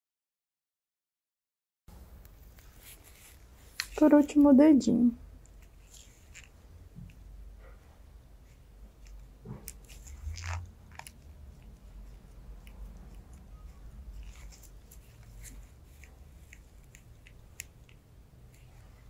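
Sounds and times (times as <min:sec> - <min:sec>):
low steady hum: 0:01.9 - 0:19.0
cuticle nippers snipping: 0:09.0 - 0:18.7.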